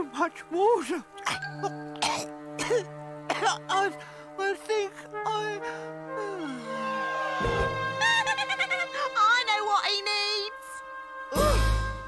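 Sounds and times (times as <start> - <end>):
background music chord: 0.0 - 12.0
cartoon character coughing: 2.0 - 3.6.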